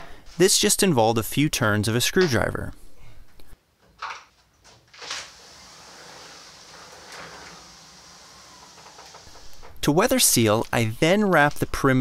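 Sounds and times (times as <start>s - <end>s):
sliding door rolling on track: 5.0s - 9.9s.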